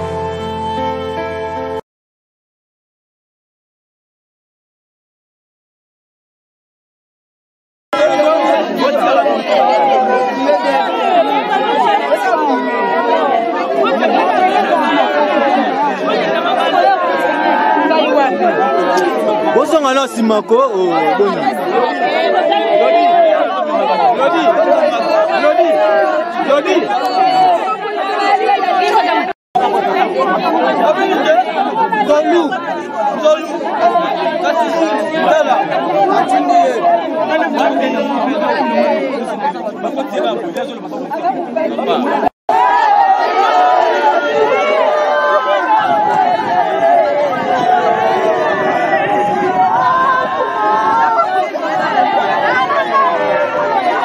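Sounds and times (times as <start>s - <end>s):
crowd voices overlapping: 0.0s - 1.8s, 8.0s - 54.0s.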